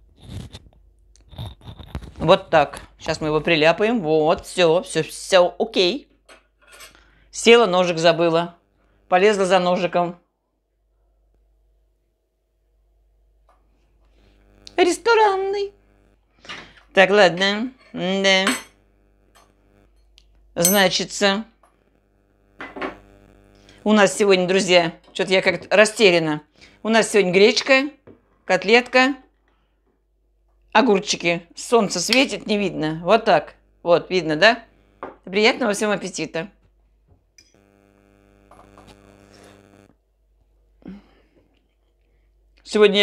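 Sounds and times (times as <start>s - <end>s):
fabric rubbing on microphone: 0.0s - 0.7s, 1.3s - 3.0s, 37.6s - 39.9s.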